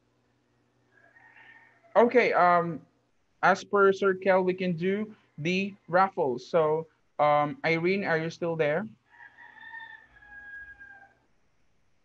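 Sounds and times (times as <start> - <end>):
faint background hiss: 1.8 - 9.1.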